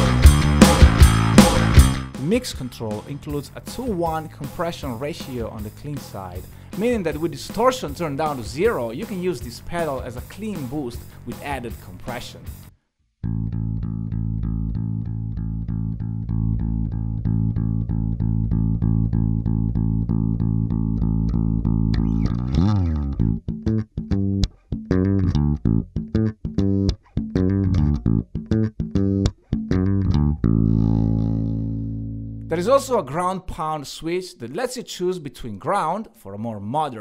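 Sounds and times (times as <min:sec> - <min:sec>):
distorted electric bass: 0:00.0 - 0:02.8, 0:12.5 - 0:33.0.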